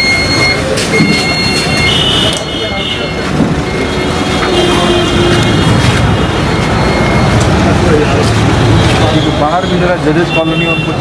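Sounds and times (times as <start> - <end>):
people talking: 0.0 - 11.0
road traffic: 0.0 - 11.0.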